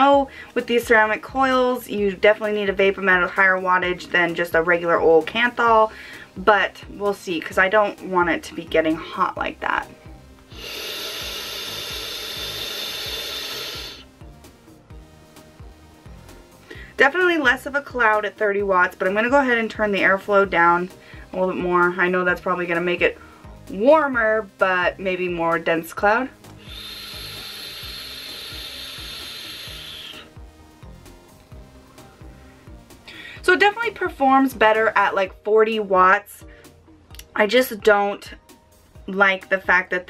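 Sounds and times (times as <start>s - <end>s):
faint background music with beat: 0.0s - 40.0s
hiss of air through vape: 10.5s - 14.1s, 26.5s - 30.4s.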